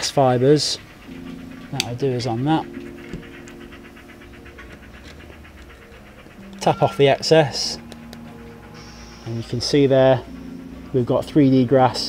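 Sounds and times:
static grass applicator ticking: 0.0s - 11.9s.

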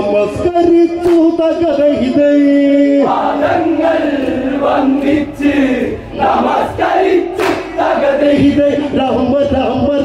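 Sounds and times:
men singing folk song in unison: 3.0s - 8.6s
loud group shout: 3.1s - 8.4s.

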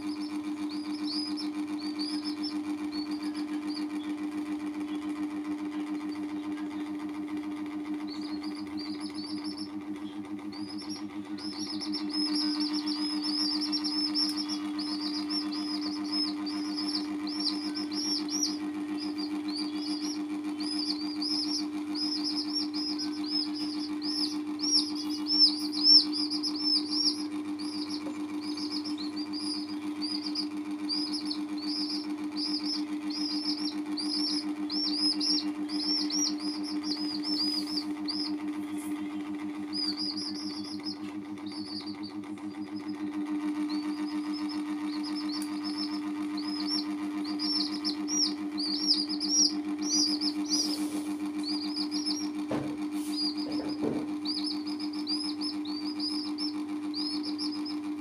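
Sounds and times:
baby chicks peeping: 0.0s - 58.0s
low mechanical hum: 0.0s - 58.0s.

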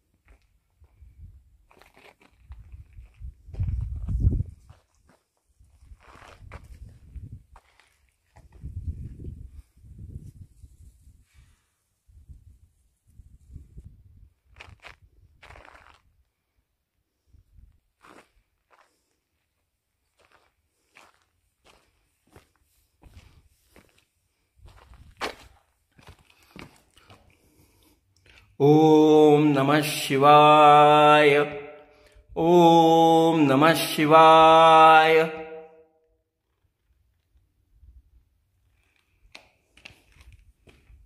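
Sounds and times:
footsteps on dry ground: 1.6s - 9.2s, 14.5s - 16.2s, 18.0s - 27.6s, 38.8s - 41.0s
wind gusting on microphone: 2.4s - 4.8s, 5.6s - 7.6s, 8.4s - 15.5s.

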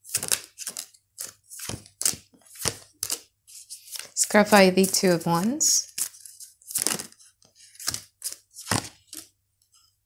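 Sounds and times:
cards being shuffled: 0.0s - 9.3s.

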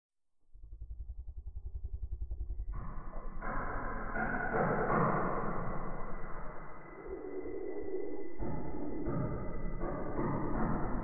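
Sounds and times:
low pulsing rumble: 0.3s - 11.0s.

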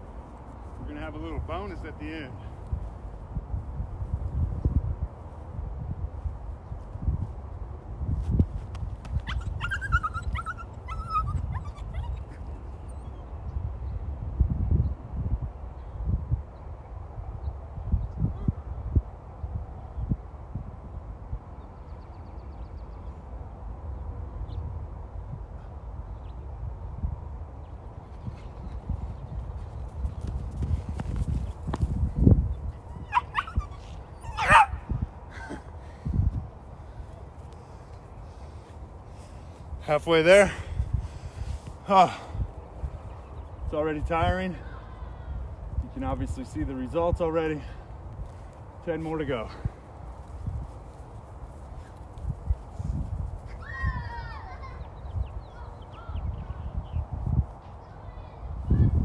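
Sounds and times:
dog whining: 9.2s - 13.2s, 33.0s - 34.8s
dog yipping: 9.2s - 13.2s, 32.9s - 34.9s.

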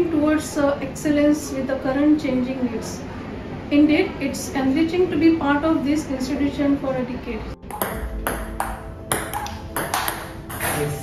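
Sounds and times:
ping-pong ball clicking off paddle: 7.7s - 10.8s.

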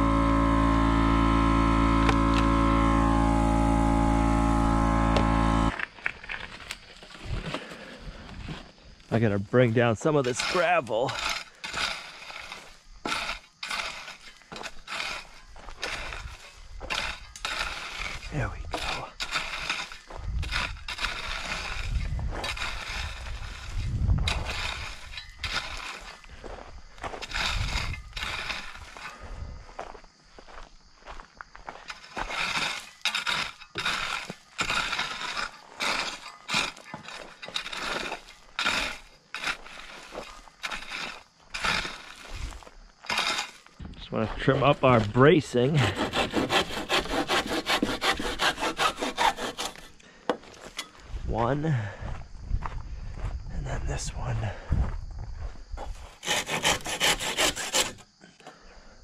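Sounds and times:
rake scraping through gravel: 0.0s - 51.6s, 55.9s - 58.2s.

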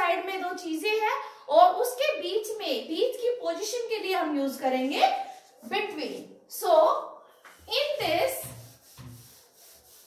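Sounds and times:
duster rubbing on whiteboard: 7.5s - 10.0s.

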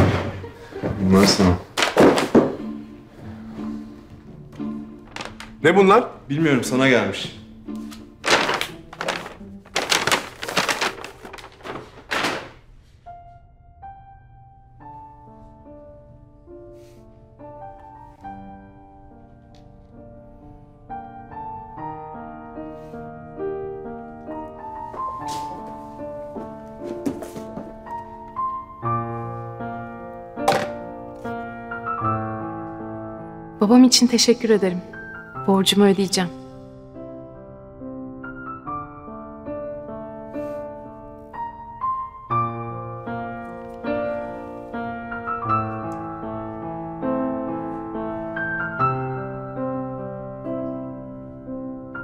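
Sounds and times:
soft piano music: 0.0s - 52.0s
package rustling and thunking: 1.8s - 2.7s, 5.0s - 5.6s, 7.9s - 12.7s, 30.4s - 30.9s
cardboard box and paper handled: 8.2s - 12.4s.

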